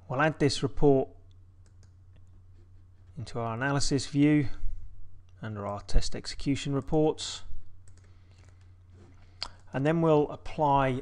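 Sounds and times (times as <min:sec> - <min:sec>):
low electrical hum: 0:00.0 - 0:11.0
computer mouse clicks: 0:01.3 - 0:02.4, 0:07.8 - 0:08.7.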